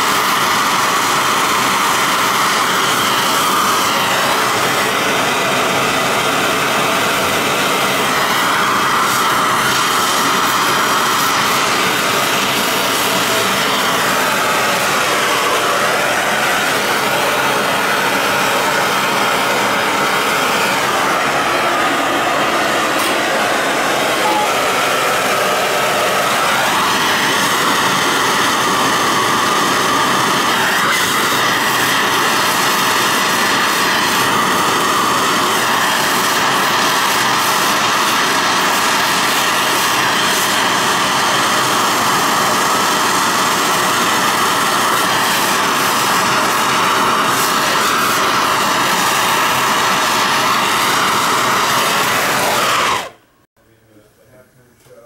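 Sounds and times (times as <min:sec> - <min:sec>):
torch flame hissing: 0:00.0 - 0:53.2.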